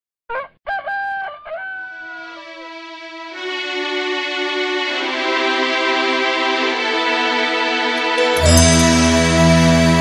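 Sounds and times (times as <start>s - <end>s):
rooster crowing: 0.3s - 2.6s.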